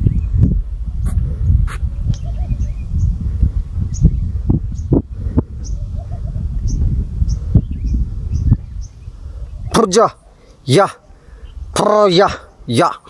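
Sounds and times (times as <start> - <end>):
small bird chirping: 2.0 - 3.2, 3.8 - 5.0, 5.6 - 9.9.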